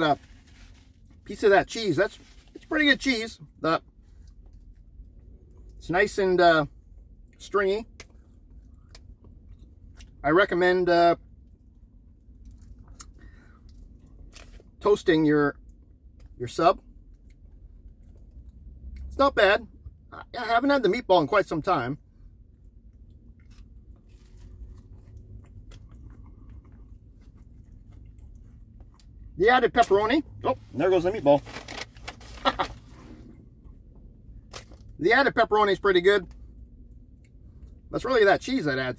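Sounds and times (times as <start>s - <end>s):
low rumble inside car: 0.0s - 38.9s
man chewing: 22.5s - 29.3s.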